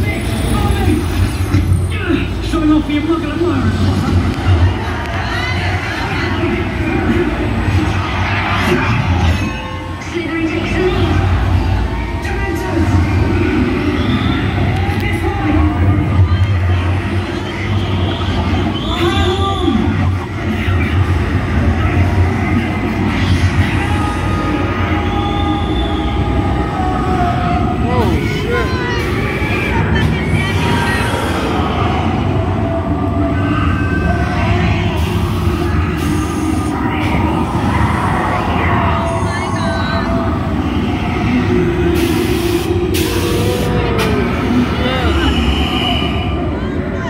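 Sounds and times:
faint voices: 0.0 - 47.0
ride vehicle rumble: 0.0 - 47.0.

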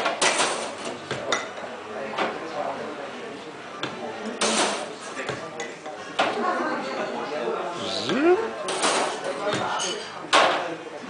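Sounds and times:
bar chatter: 0.0 - 11.0.

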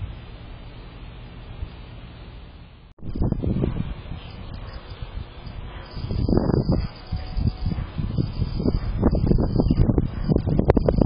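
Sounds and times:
wind gusting on microphone: 3.0 - 11.0.

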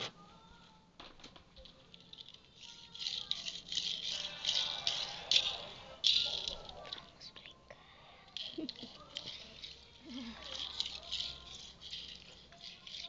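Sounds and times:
small object rattling and rustling: 1.0 - 7.4, 8.4 - 13.0.

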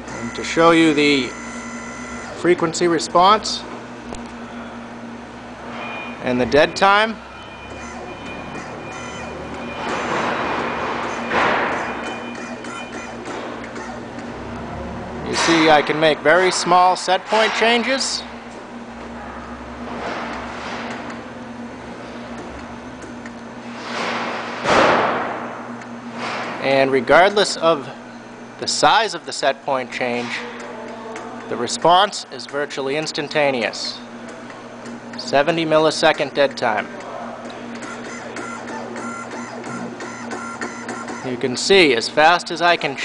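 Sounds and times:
steady electrical hum: 0.0 - 43.0
servo motor and pump whirring: 37.8 - 41.4.

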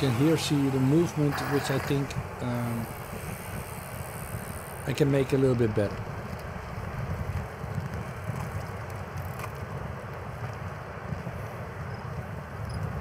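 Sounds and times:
bicycle rolling along street: 0.0 - 13.0
wind rumbling on microphone: 0.0 - 13.0.

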